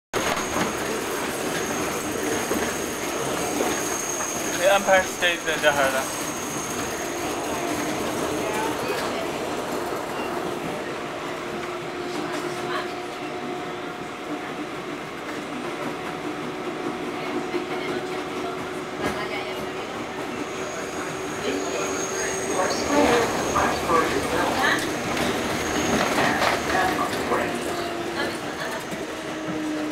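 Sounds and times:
train wheels rumbling on rail: 0.1s - 29.9s
people talking: 4.5s - 6.2s, 7.3s - 9.6s, 12.0s - 13.5s, 17.1s - 29.3s.

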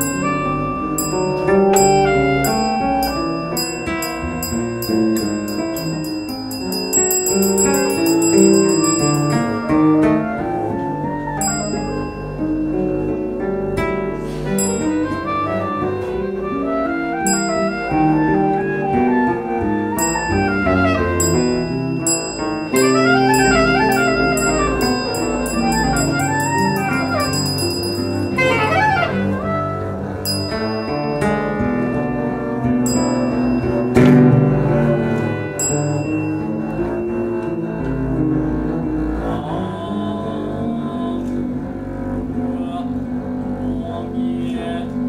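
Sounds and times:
acoustic guitar: 0.0s - 6.5s, 7.3s - 45.0s
clarinet melody: 0.0s - 40.8s
double bass: 0.0s - 45.0s.

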